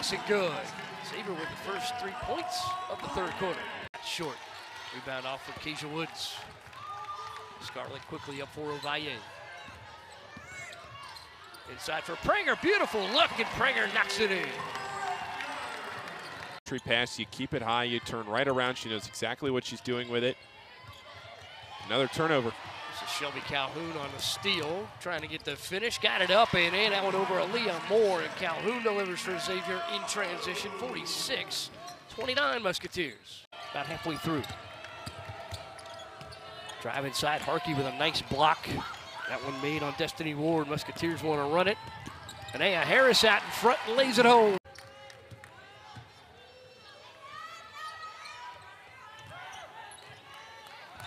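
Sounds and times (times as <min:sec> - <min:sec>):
low arena background: 0:00.0 - 0:51.0
sneaker squeak: 0:08.7 - 0:11.7, 0:34.4 - 0:36.8, 0:41.8 - 0:42.8.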